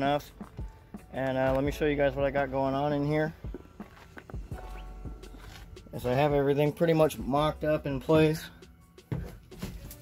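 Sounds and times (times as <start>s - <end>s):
footsteps on dirt: 0.0s - 5.9s.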